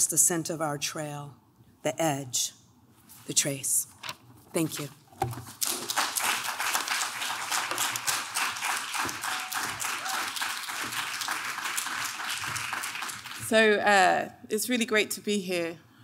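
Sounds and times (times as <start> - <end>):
audience applauding: 5.6 - 13.5.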